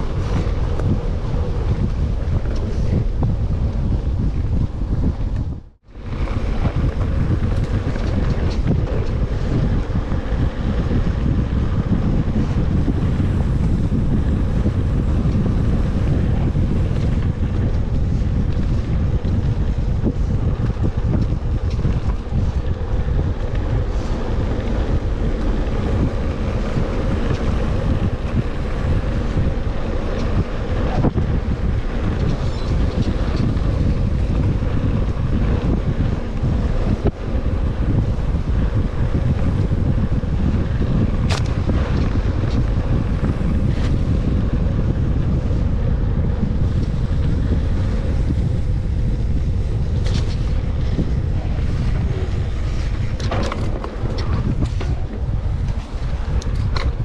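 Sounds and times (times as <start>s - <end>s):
tyres rumbling on dirt: 0.0s - 57.0s
wind buffeting microphone: 0.0s - 57.0s
bike knocking over bumps: 52.4s - 57.0s.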